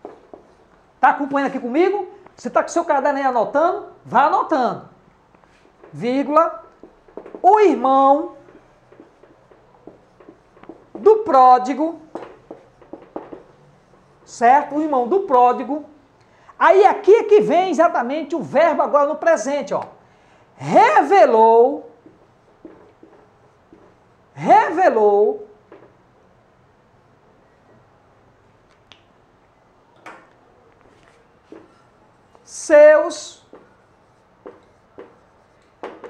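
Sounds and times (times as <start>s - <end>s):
marker squeaking on whiteboard: 5.4s - 15.8s, 20.8s - 24.8s, 33.1s - 36.0s.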